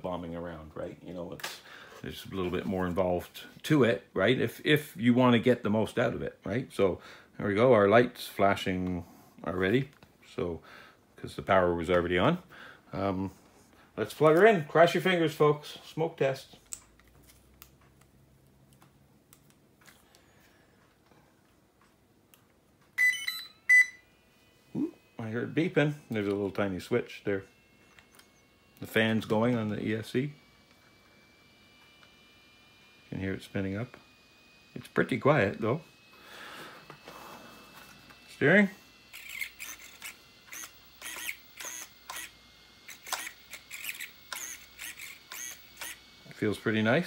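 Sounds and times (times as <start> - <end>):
short high beeps: 23.0 - 24.1
steering servo whirring: 24.0 - 47.0.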